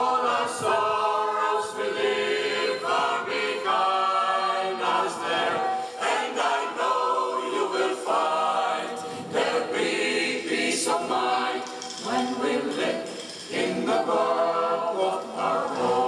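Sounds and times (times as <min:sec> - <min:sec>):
choir singing a cappella: 0:00.0 - 0:16.0.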